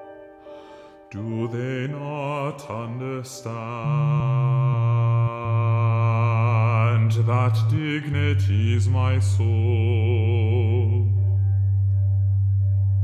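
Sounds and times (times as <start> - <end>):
voice singing with vibrato: 1.1 - 11.3.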